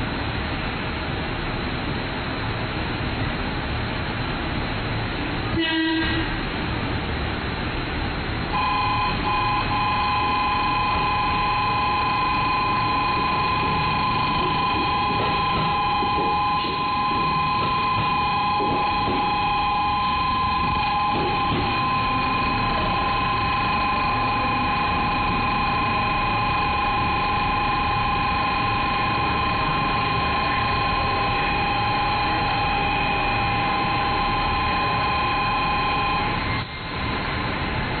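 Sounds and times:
electric train rumble: 0.0 - 38.0
two-tone electronic platform signal: 8.5 - 36.7.

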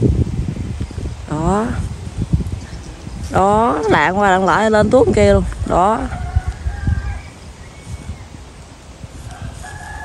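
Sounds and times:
wind rumbling on microphone: 0.0 - 10.0
rooster crowing faintly: 9.2 - 10.0.

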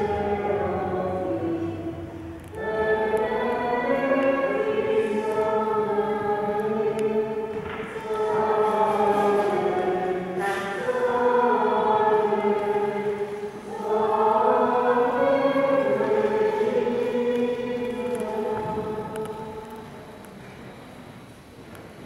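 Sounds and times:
choir singing: 0.0 - 20.2.

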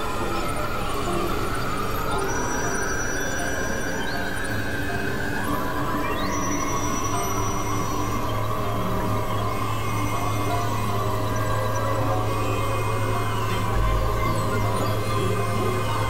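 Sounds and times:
electronic drone music: 4.6 - 16.0.

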